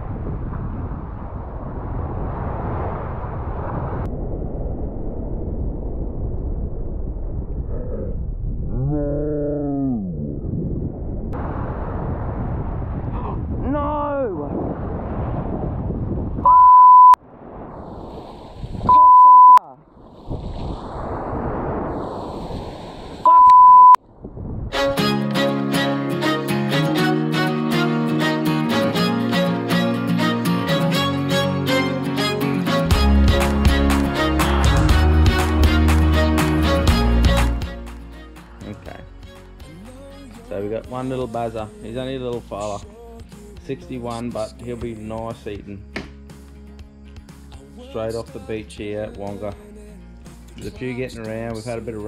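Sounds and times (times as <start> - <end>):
breaking surf: 0.0 - 5.3, 11.4 - 16.5, 17.2 - 23.4
wind on microphone: 0.0 - 16.6, 17.2 - 19.1, 19.8 - 23.3, 24.0 - 25.0
high censor beeps: 16.4 - 17.2, 18.9 - 19.7, 23.2 - 24.0
guitar music: 24.7 - 40.3.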